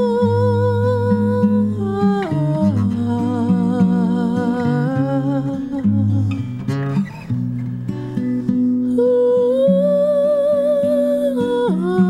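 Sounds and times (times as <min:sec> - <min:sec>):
woman singing wordless melody: 0:00.0 - 0:06.8, 0:08.6 - 0:12.0
acoustic guitar: 0:00.0 - 0:12.0.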